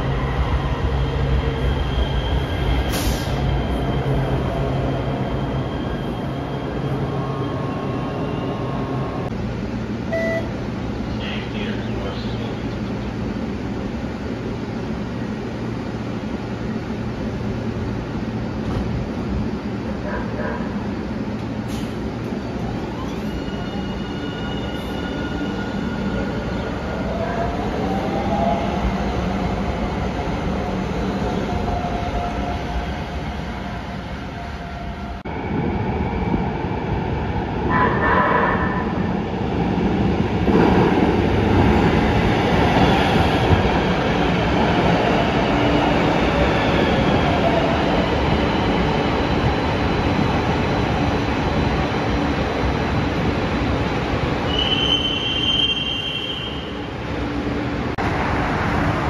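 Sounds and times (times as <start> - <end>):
train wheels rumbling and squealing: 0.0 - 9.4, 10.1 - 57.9.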